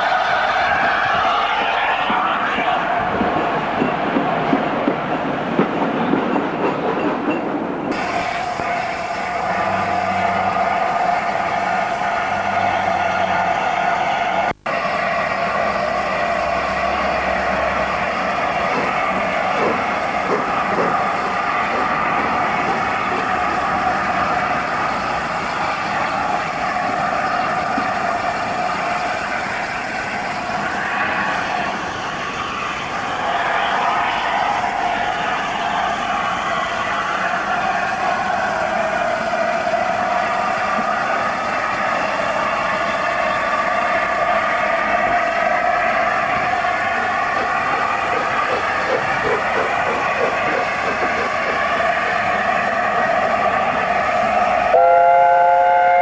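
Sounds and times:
steam train running on rails: 0:00.0 - 0:56.0.

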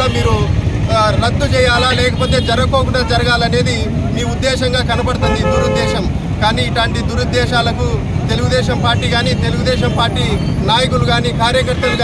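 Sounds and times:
man speaking in raised voice: 0:00.0 - 0:12.0.

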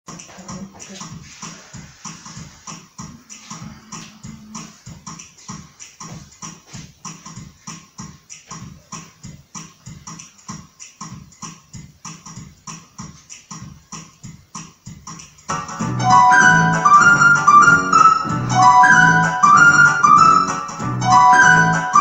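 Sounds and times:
programmed drum rhythm: 0:00.1 - 0:22.0.

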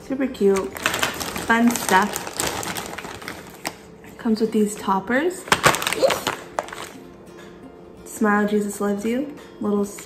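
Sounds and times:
plastic bags crinkling: 0:00.4 - 0:03.9, 0:05.4 - 0:07.0.

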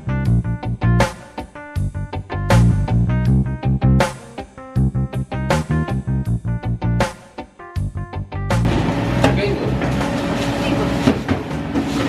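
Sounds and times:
guitar background music: 0:00.0 - 0:12.0.

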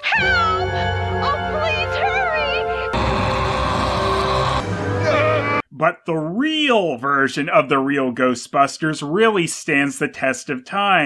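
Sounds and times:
cartoon music: 0:00.0 - 0:05.6
loud rushing noise effect: 0:03.0 - 0:05.2.

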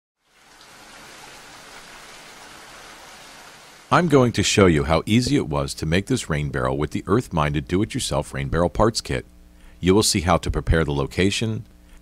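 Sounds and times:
steady hiss: 0:00.3 - 0:12.0.

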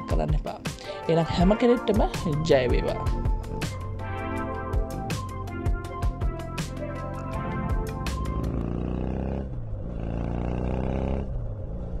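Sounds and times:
closing music: 0:01.0 - 0:08.6
low steady growl: 0:03.3 - 0:12.0.

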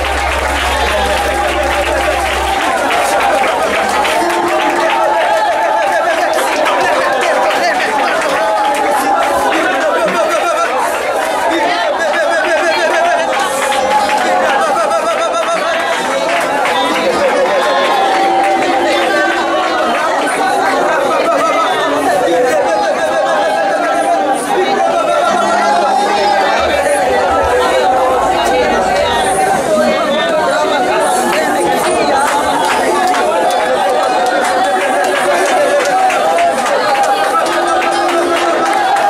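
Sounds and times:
many voices praying aloud: 0:00.0 - 0:39.0.

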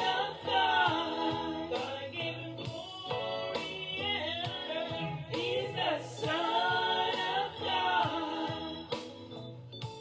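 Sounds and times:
woman singing religious song: 0:00.0 - 0:09.0
music with steady beat: 0:00.0 - 0:10.0.

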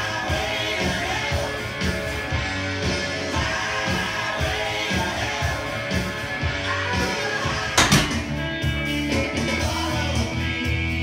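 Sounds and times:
rock music with guitar: 0:00.0 - 0:11.0.

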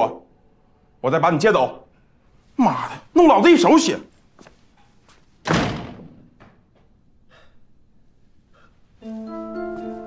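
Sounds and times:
door slamming shut: 0:05.4 - 0:06.5.

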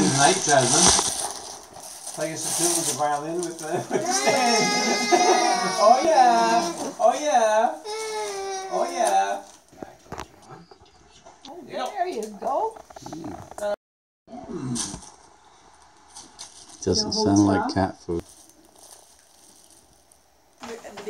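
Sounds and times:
paper rustling: 0:00.1 - 0:07.2
high-pitched laughter: 0:03.7 - 0:06.9.

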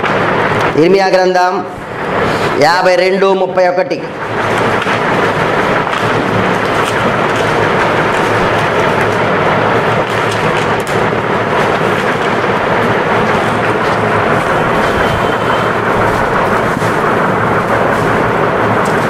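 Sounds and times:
loud rushing noise: 0:00.0 - 0:19.0.

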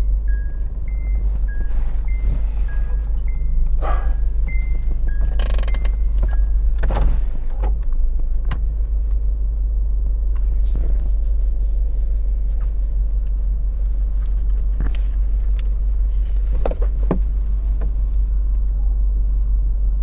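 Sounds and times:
car engine idling: 0:00.0 - 0:20.0.

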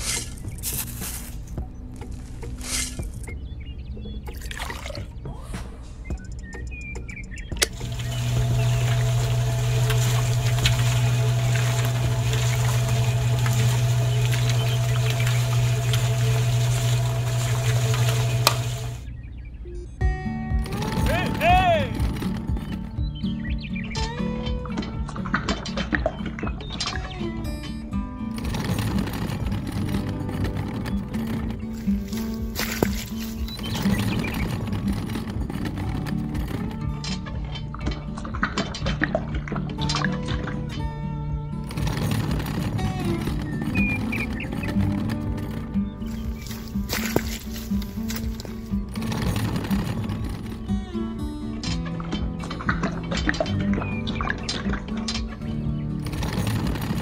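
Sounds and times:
background music: 0:00.0 - 0:57.0
small electric motor humming: 0:07.7 - 0:19.1, 0:20.6 - 0:23.0, 0:28.3 - 0:37.0, 0:41.6 - 0:51.4.

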